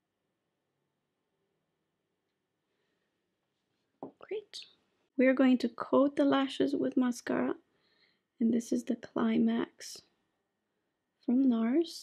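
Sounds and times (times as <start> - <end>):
person whispering: 4.1 - 4.8.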